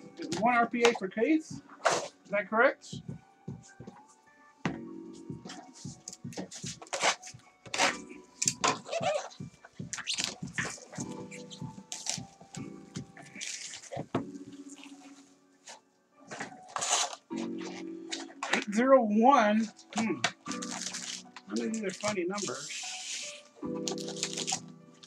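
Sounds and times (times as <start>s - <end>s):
plastic wrap crinkling: 8.7s - 18.7s, 19.6s - 25.0s.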